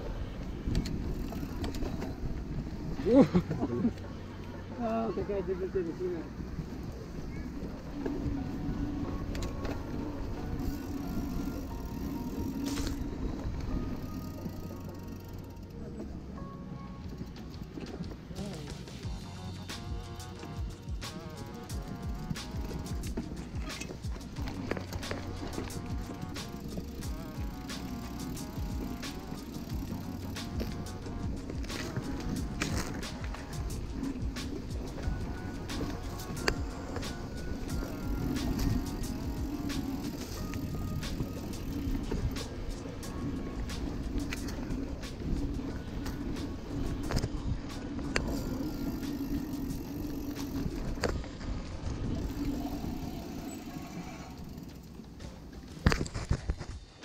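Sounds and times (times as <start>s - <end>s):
bike clicks and knocks over bumps: 0.0s - 4.8s, 6.4s - 16.3s, 17.0s - 57.0s
background music: 0.0s - 51.2s
mountain bike tyre noise and rattle: 0.0s - 57.0s.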